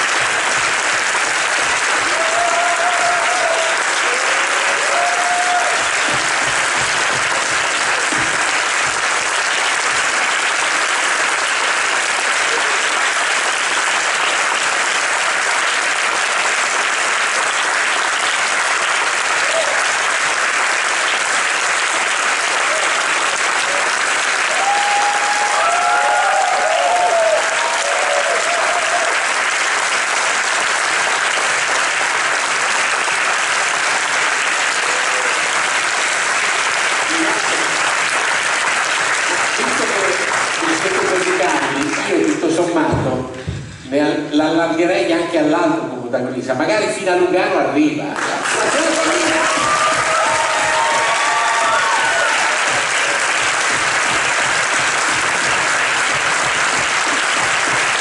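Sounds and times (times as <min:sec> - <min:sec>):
large audience applauding: 0:00.0 - 0:43.4, 0:48.1 - 0:58.0
crowd cries: 0:02.0 - 0:05.9, 0:24.5 - 0:29.2, 0:48.6 - 0:53.2.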